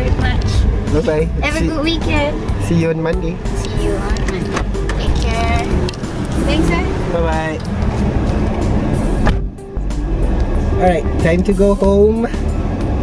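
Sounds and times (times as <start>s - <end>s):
background music: 0.0s - 13.0s
car engine idling: 0.0s - 13.0s.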